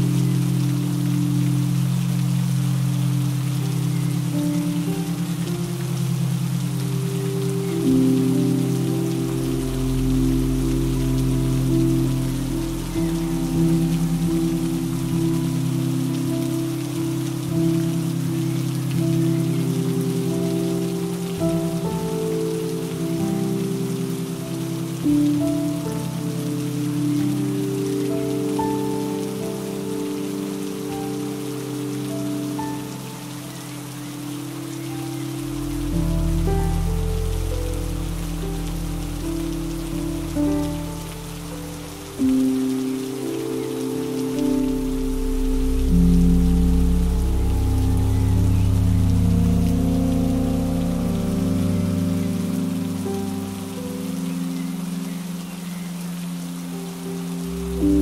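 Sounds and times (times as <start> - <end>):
rain hissing: 0.0 - 58.0
slow music with held chords: 0.0 - 58.0
deep bass layer: 44.7 - 52.1.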